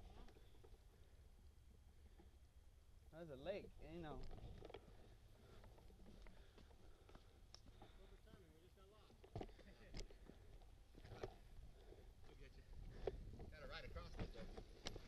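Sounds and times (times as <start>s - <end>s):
low rumble of bikes on dirt: 0.0s - 15.0s.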